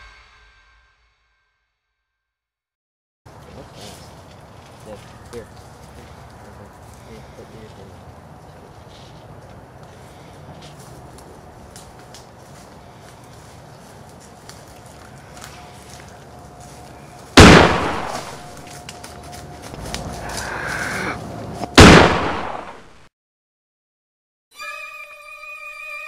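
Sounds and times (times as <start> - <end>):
loud gunshot bangs: 17.4 - 18.5, 21.8 - 22.9.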